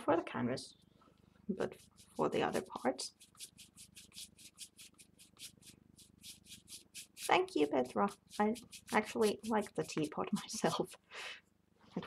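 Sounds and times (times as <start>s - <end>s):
paintbrush strokes on canvas: 1.5s - 11.1s.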